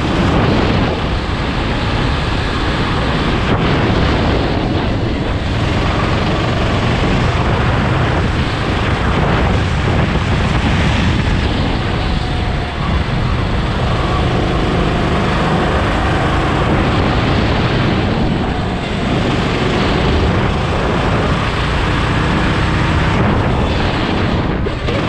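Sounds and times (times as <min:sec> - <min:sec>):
go-kart engine droning: 0:00.0 - 0:25.0.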